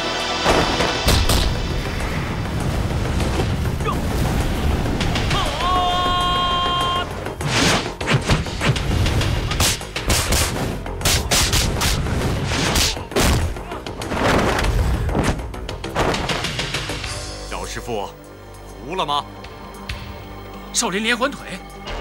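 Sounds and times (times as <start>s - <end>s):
backing music: 0.0s - 22.0s
punches and hits: 7.4s - 8.9s, 9.5s - 13.6s.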